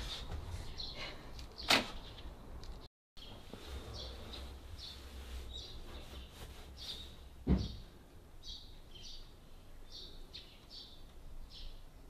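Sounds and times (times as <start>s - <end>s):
small birds chirping: 3.2s - 7.8s, 8.4s - 12.0s
dull thump: 7.4s - 7.8s.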